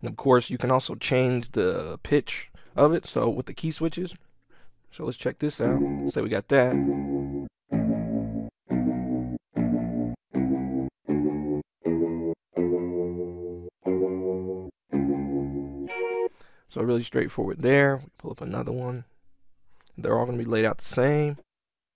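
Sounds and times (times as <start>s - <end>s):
short ambient guitar chords: 5.6s - 16.3s.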